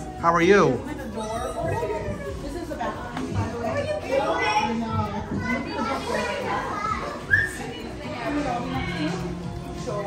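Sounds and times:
chatter of children and adults: 0:00.0 - 0:10.0.

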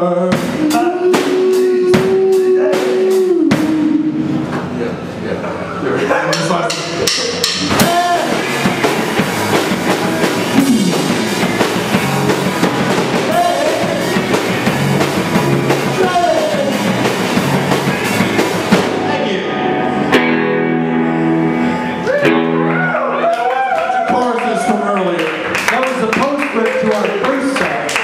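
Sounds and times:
person singing: 0:00.0 - 0:04.4, 0:07.2 - 0:08.6, 0:10.5 - 0:11.3, 0:15.8 - 0:17.2
drum kit: 0:00.0 - 0:05.0, 0:06.2 - 0:24.3
electric guitars: 0:07.3 - 0:24.8.

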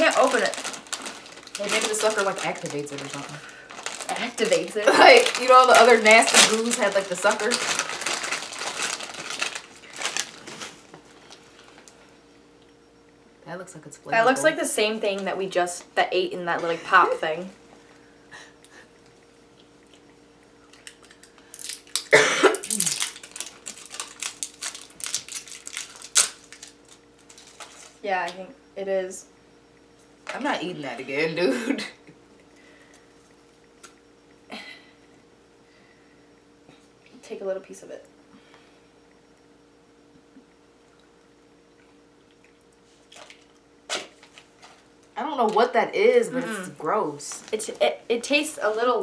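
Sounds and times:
plastic candy wrapper crinkling: 0:00.0 - 0:11.9, 0:20.7 - 0:28.0, 0:43.1 - 0:44.8
faint steady hum: 0:00.0 - 0:49.0
person coughing: 0:22.1 - 0:22.9, 0:31.4 - 0:32.0.

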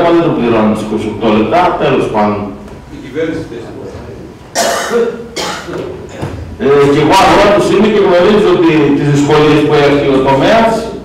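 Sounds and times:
man clearing throat with cough: 0:04.5 - 0:06.4.

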